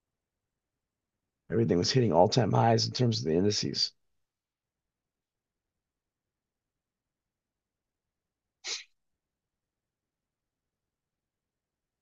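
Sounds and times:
man sneezing: 8.7 - 8.9.

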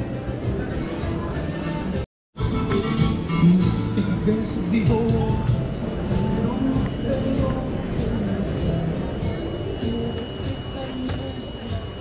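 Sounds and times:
background music: 0.0 - 12.0
people chatting indistinctly: 4.1 - 12.0.

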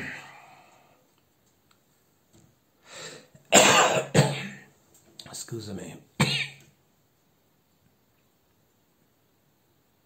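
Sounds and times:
short breath in: 2.8 - 3.4
man coughing: 3.5 - 4.7, 6.2 - 6.6.

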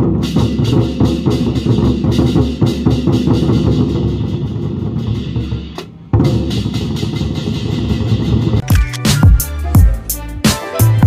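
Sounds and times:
large barrel drums rumbling: 0.0 - 8.6.

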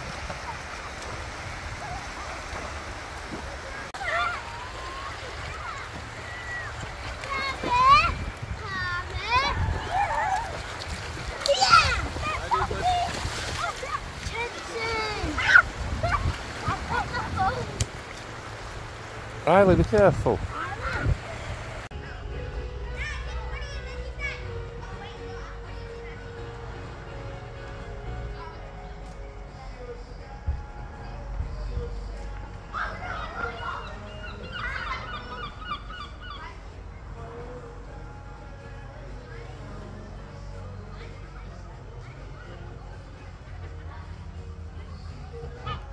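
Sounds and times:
feet splashing in shallow surf: 0.0 - 21.9
low outdoor rumble: 0.0 - 45.9
children calling out: 3.8 - 18.0, 32.6 - 36.8
bird honking calls: 32.8 - 36.7.

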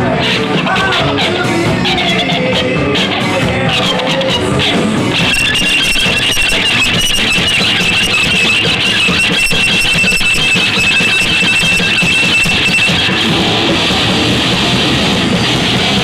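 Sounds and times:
band playing: 0.0 - 16.0
electric guitar feedback squeal: 0.2 - 16.0.

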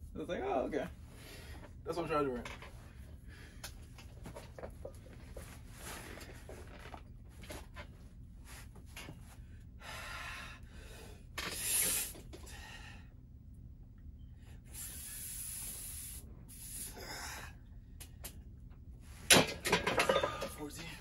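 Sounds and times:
man breathing forcefully: 9.8 - 13.2, 14.7 - 17.7.

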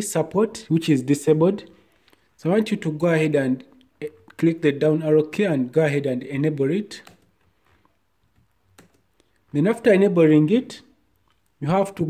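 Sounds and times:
laptop key presses: 8.3 - 9.1.

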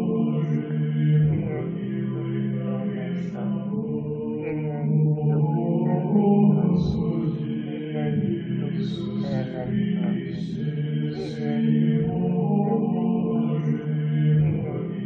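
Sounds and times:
slow devotional chant: 0.0 - 15.0.

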